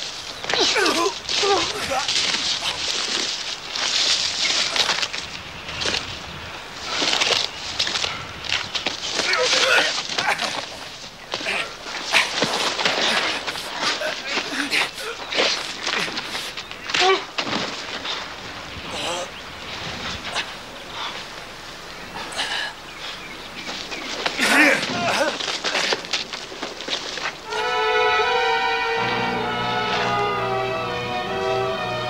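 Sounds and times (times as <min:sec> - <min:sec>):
feet scuffling on dirt: 0:00.0 - 0:27.7
men grunting: 0:00.5 - 0:02.9, 0:09.2 - 0:17.4, 0:18.9 - 0:19.3, 0:24.4 - 0:26.1.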